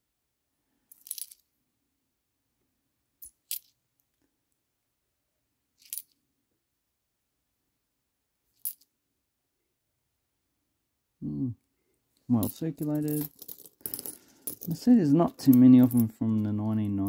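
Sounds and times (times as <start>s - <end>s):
coins clinking: 0.9s - 1.4s, 3.2s - 3.7s, 8.6s - 8.9s, 12.3s - 17.0s.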